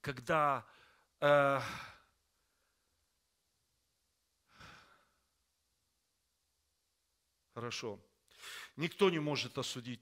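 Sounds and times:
man's short breath: 8.3 - 8.8.

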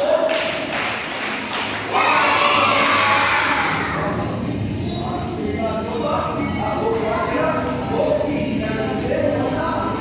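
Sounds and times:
children shouting together: 1.9 - 4.0.

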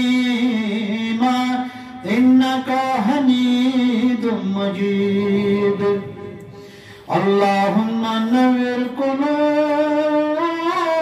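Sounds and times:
man chanting: 0.0 - 11.0
man taking a breath: 6.4 - 7.1.

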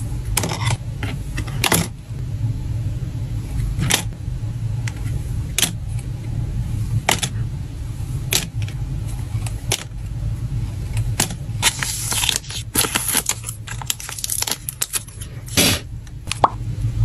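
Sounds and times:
low steady hum: 0.0 - 17.0
foil bag crinkling: 11.6 - 15.8.

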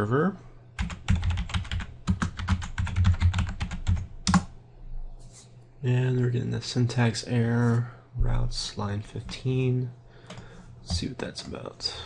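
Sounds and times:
typing on computer keyboard: 0.8 - 4.5.

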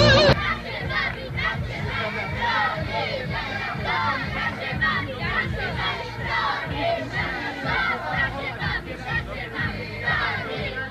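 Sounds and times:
boys shouting and chanting: 0.0 - 10.9.

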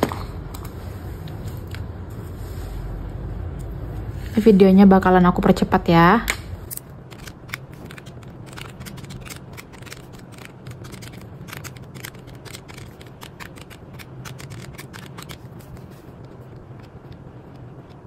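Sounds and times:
low background hum: 0.0 - 18.0
calculator keys clicking: 7.1 - 18.0.

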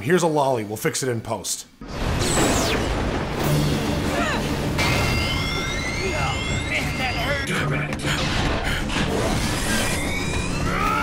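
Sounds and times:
rushing energy blast: 1.8 - 7.4
character screaming: 10.1 - 11.0.

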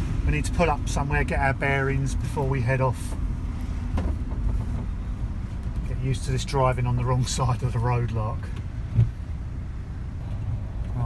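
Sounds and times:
van engine and road rumble: 0.0 - 11.0.

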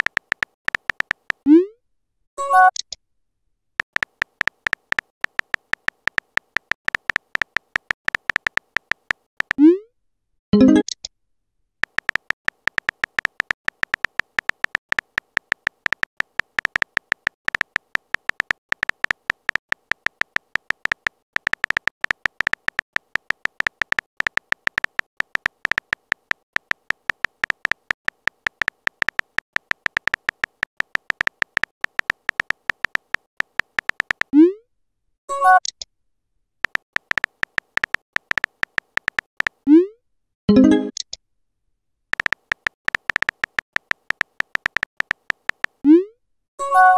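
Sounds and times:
phone keyboard typing clicks: 0.0 - 1.4, 3.8 - 9.7, 11.8 - 34.4, 36.6 - 39.6, 42.1 - 45.9.

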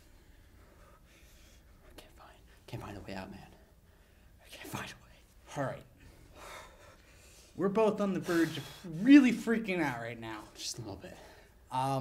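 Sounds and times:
person whispering: 1.8 - 3.7, 4.4 - 5.8.

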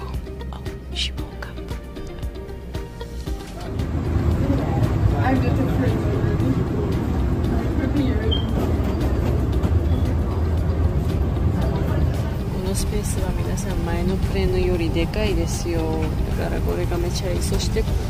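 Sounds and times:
low rumble of aircraft: 3.5 - 18.0.

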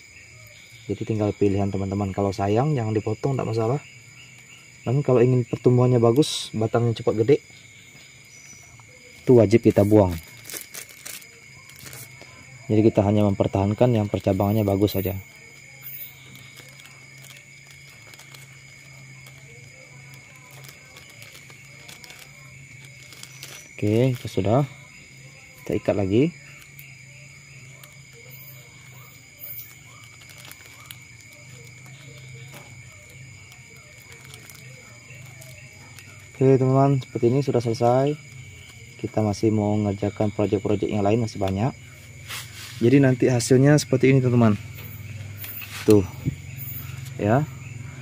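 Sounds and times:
night insects chirring: 0.0 - 48.0
plastic wrap crinkling: 7.8 - 39.6, 44.3 - 47.2.

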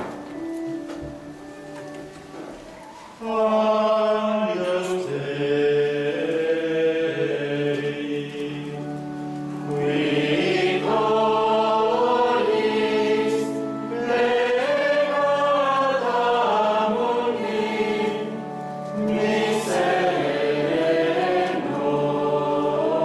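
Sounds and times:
choir singing chant: 2.4 - 23.0.

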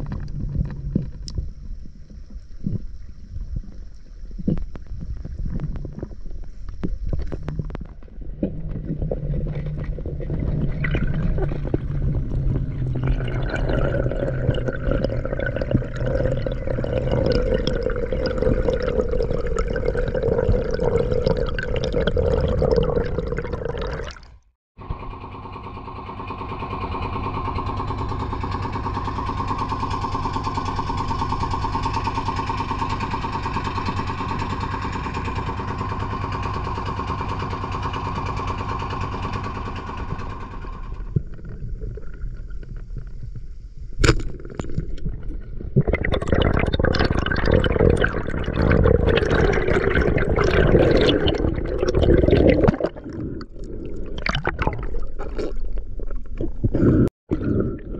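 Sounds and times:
boat engine running: 0.0 - 24.0, 24.8 - 57.9.

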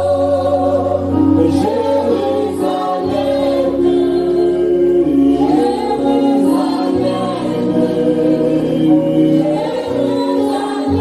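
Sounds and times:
congregation singing: 0.0 - 11.0.

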